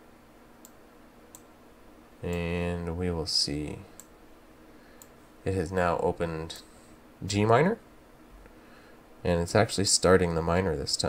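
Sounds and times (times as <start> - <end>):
low steady room hiss: 0.0 - 11.0.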